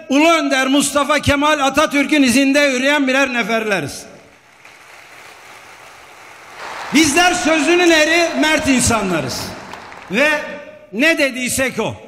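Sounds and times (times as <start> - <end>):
audience applause: 4.2 - 10.6.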